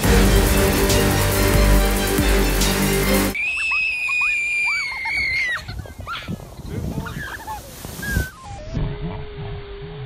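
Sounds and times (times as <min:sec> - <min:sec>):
background music: 0:00.0 - 0:03.4
child screaming: 0:03.4 - 0:06.4.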